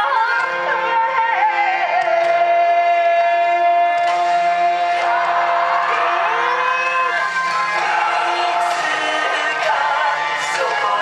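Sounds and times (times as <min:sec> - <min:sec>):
dance music over sound system: 0:04.0 - 0:11.0
group of voices shouting: 0:04.0 - 0:11.0.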